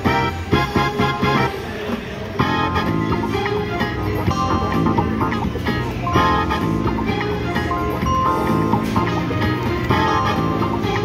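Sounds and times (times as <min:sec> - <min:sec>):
slot machine bonus music: 0:02.4 - 0:11.0.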